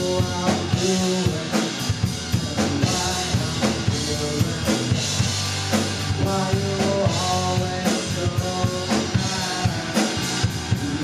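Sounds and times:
drum kit beat: 0.0s - 11.0s
electric bass: 0.0s - 11.0s
electric guitar: 0.0s - 11.0s.

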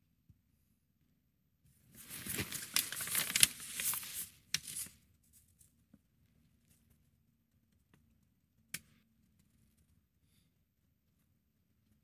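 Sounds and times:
nylon jacket rustling: 2.0s - 4.3s.

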